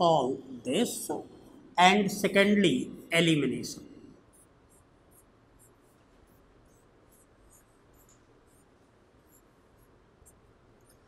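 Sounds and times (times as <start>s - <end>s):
marker squeaking on whiteboard: 4.3s - 11.0s.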